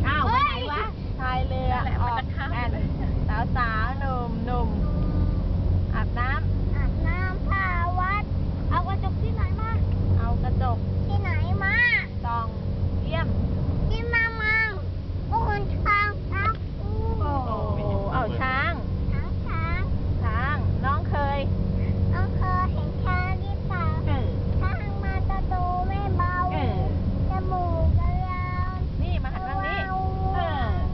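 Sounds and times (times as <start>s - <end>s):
car engine hum and road noise: 0.0s - 30.9s
toddler singing: 22.2s - 26.5s, 27.3s - 28.9s.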